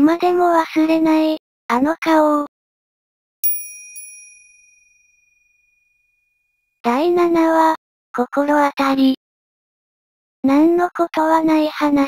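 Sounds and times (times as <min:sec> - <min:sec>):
small bell chime ringing: 0:03.4 - 0:06.6.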